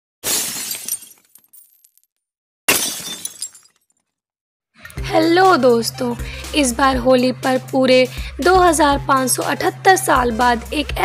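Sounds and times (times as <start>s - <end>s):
glass shattering: 0.2s - 2.1s, 2.7s - 4.1s.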